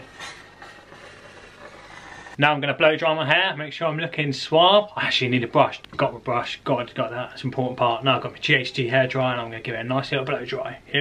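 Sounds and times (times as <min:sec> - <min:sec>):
garment steamer hissing: 0:00.0 - 0:02.4.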